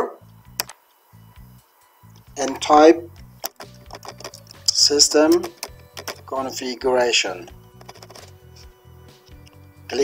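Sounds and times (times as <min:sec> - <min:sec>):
quiet music with low bass: 0:00.0 - 0:10.0.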